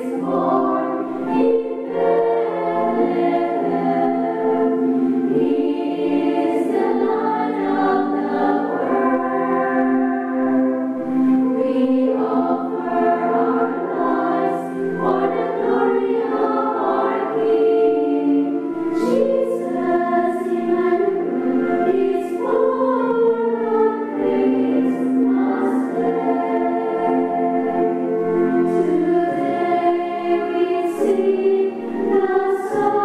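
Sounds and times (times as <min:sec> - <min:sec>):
women's choir singing: 0:00.0 - 0:33.0.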